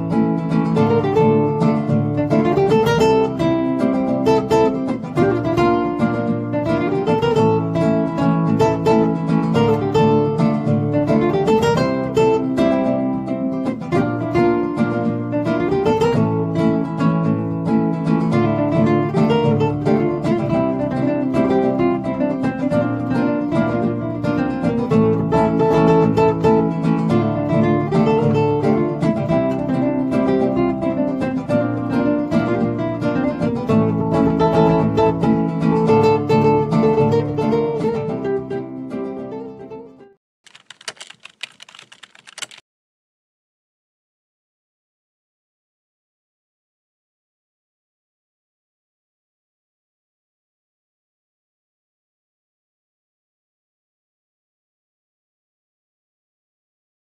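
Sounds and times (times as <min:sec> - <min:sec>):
nylon-string guitar fingerstyle: 0:00.0 - 0:40.2.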